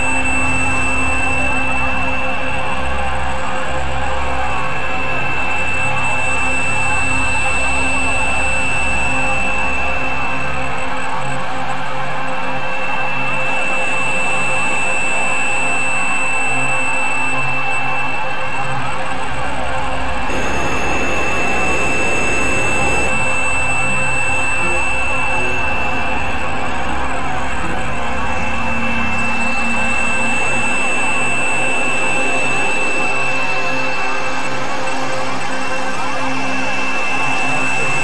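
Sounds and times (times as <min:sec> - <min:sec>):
electronic drone music: 0:20.2 - 0:33.4
high held tone: 0:20.3 - 0:26.0.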